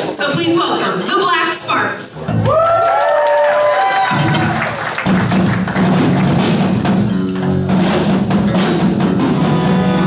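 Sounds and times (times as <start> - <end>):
bass guitar notes: 4.1 - 10.0
drum hits: 4.1 - 10.0.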